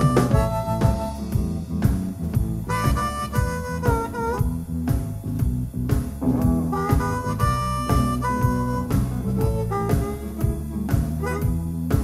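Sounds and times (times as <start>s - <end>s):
bass guitar: 0.0s - 12.0s
electric guitar: 0.0s - 12.0s
harmonica bending notes: 0.0s - 12.0s
steady drum beat: 0.0s - 12.0s.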